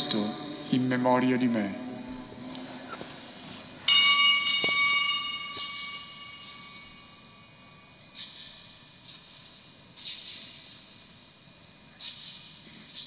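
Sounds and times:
altar bell ringing: 0:03.8 - 0:08.0.

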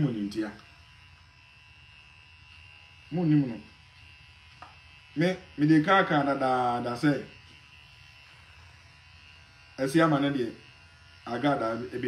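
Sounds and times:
electric shaver buzzing: 0:00.0 - 0:12.0.

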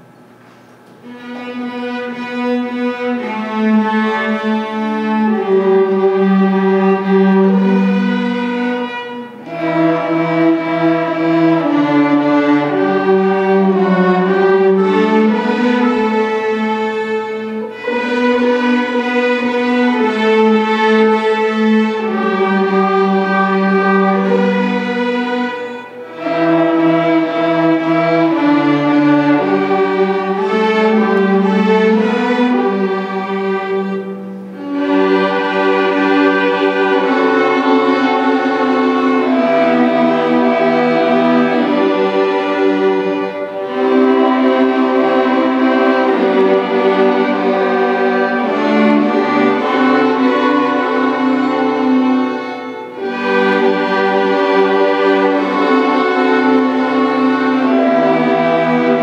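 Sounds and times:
string orchestra playing: 0:00.8 - 0:59.0.

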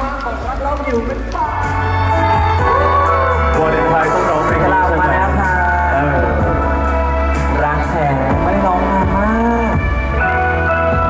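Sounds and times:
pop backing track: 0:00.7 - 0:11.0
man singing into microphone: 0:02.7 - 0:09.8.

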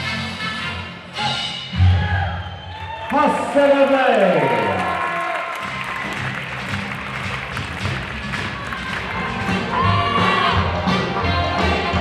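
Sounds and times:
audience applause and cheering: 0:01.8 - 0:10.8
latin dance music: 0:05.6 - 0:12.0.

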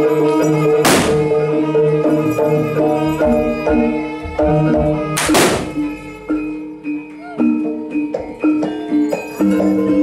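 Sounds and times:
gamelan music with metallophone: 0:00.0 - 0:10.0
whip crack: 0:00.9 - 0:01.2, 0:05.2 - 0:05.8.

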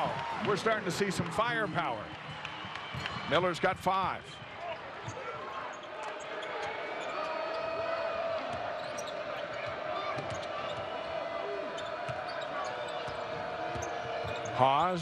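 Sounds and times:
arena crowd noise: 0:00.0 - 0:15.0
sneakers squeaking on court: 0:04.4 - 0:07.7, 0:08.4 - 0:15.0.

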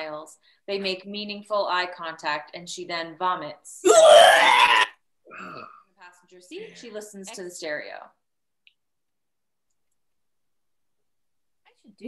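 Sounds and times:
woman making retching noise: 0:03.8 - 0:05.9.

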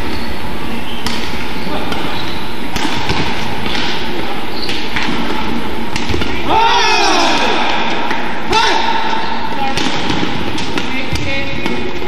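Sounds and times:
arena crowd noise: 0:00.0 - 0:12.0
racket striking shuttlecock: 0:00.9 - 0:12.0.

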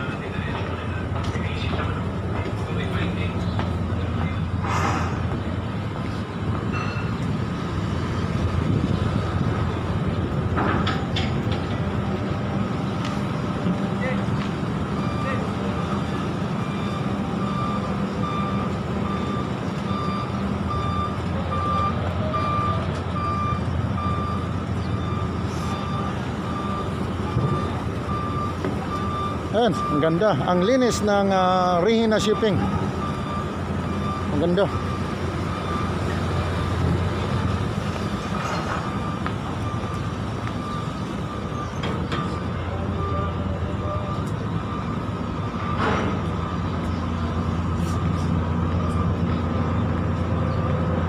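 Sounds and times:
low engine hum: 0:00.0 - 0:51.0
vehicle reversing alarm beeping: 0:00.0 - 0:51.0.

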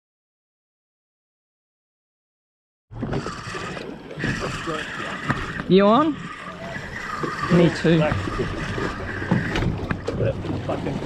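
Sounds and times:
fishing reel whirring: 0:03.0 - 0:10.1.

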